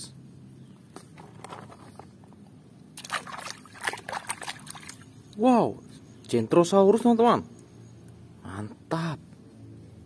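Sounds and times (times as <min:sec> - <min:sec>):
water splashing in a plastic bucket: 0:03.0 - 0:05.1.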